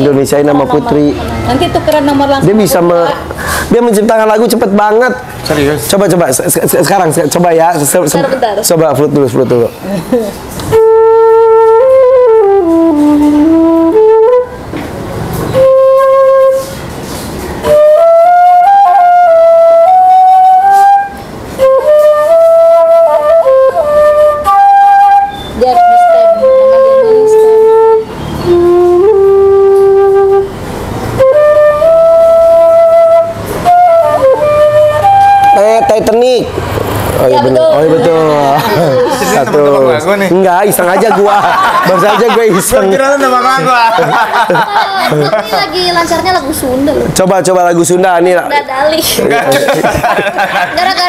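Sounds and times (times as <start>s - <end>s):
flute playing slow melody: 10.7s - 14.8s, 15.4s - 36.2s.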